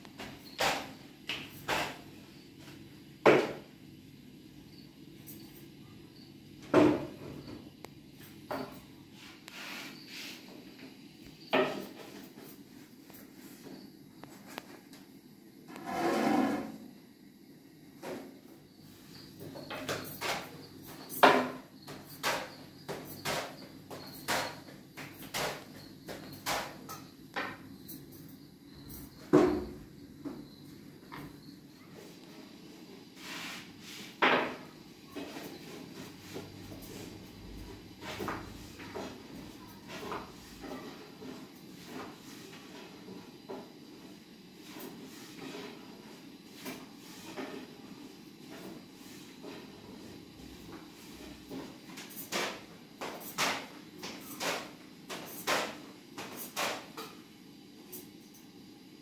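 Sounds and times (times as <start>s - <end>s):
objects knocking and clunking: 0.0s - 3.7s, 6.6s - 7.7s, 8.3s - 8.9s, 11.4s - 12.5s, 19.2s - 28.2s, 28.8s - 32.1s, 34.2s - 43.8s, 48.4s - 57.2s.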